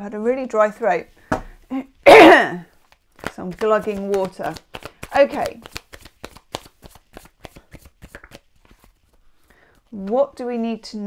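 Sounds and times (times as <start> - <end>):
cards being shuffled: 2.7 - 10.6.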